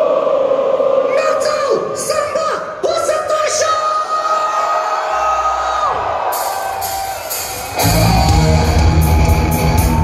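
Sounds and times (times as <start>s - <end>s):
crowd cheering and whooping: 4.4s - 10.0s
heavy metal band playing: 6.3s - 10.0s.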